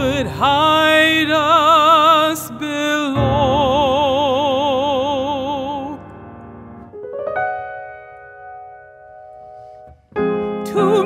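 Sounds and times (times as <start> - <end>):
grand piano playing: 0.0 - 11.0.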